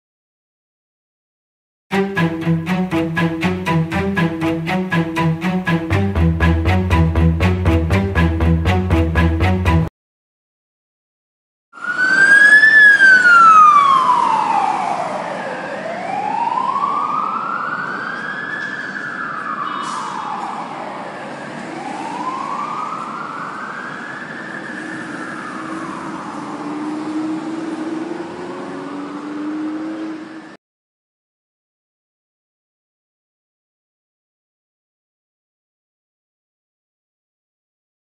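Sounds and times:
fire engine siren wailing: 11.7s - 30.6s.

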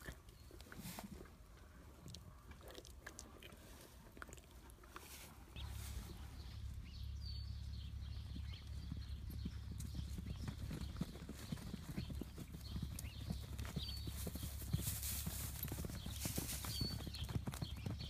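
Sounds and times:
horse hoofbeats on turf: 8.1s - 18.0s.

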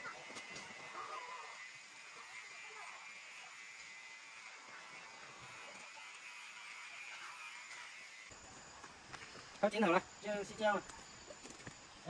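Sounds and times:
electric hair clippers buzzing: 0.0s - 8.4s.

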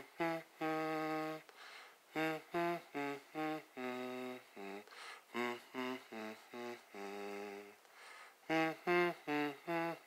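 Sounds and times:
man humming a slow melody: 0.0s - 10.0s.

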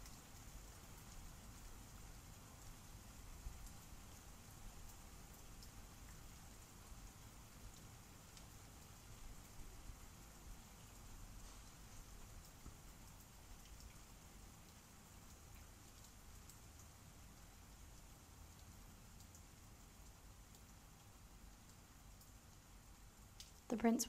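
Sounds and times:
faint room hiss: 0.0s - 24.0s
soft ticks of handling paper: 10.9s - 14.0s.

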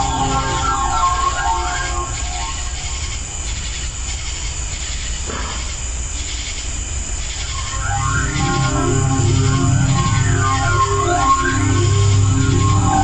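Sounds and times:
steady hiss: 0.0s - 13.0s.

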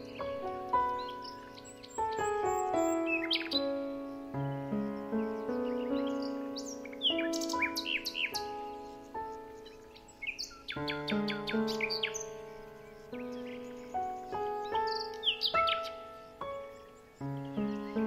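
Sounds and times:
birds chirping: 0.0s - 18.0s
slow instrumental music: 0.0s - 18.0s.

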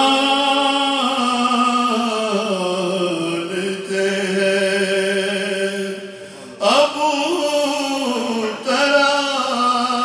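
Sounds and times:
man chanting devotional poem: 0.0s - 10.0s.

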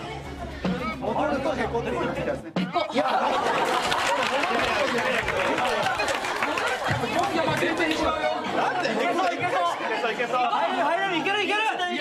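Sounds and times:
people talking and exclaiming: 0.0s - 12.0s.

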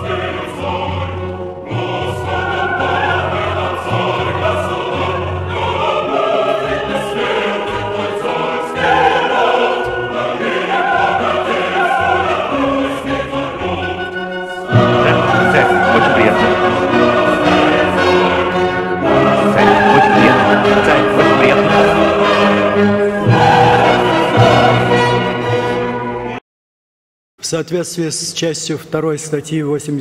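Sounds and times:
ceremonial orchestral music: 0.0s - 26.4s
choir singing: 0.0s - 26.4s.

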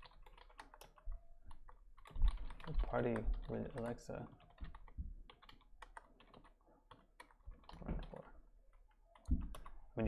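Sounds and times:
computer keyboard typing: 0.0s - 10.0s.

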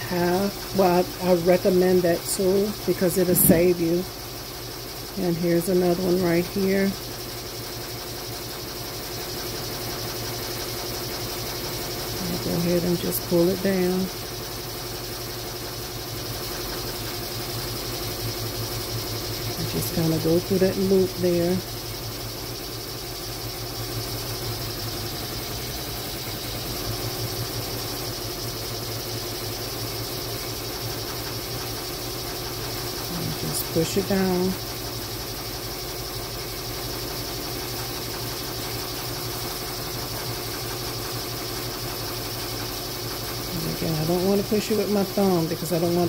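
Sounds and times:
embroidery machine whirring: 0.0s - 46.0s.

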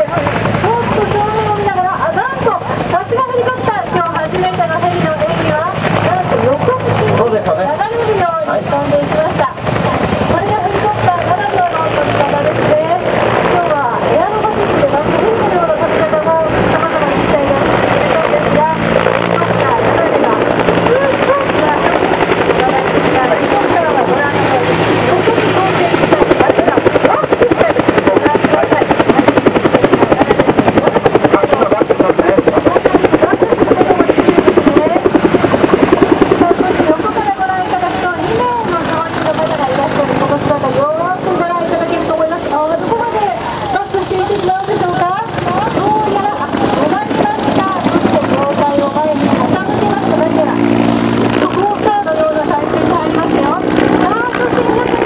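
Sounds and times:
helicopter rotor thudding: 0.0s - 55.0s.

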